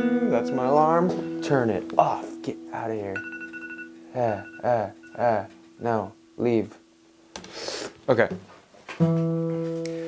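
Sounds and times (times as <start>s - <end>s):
acoustic guitar chord ringing: 0.0s - 6.4s.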